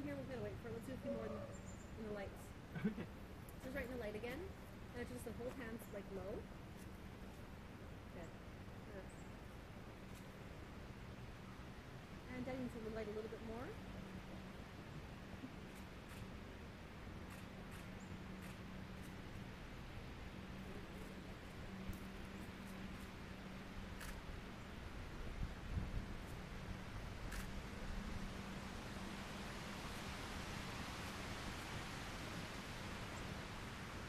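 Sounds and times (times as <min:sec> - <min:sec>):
background hiss: 0:00.0 - 0:34.0
faint low hum: 0:00.0 - 0:34.0.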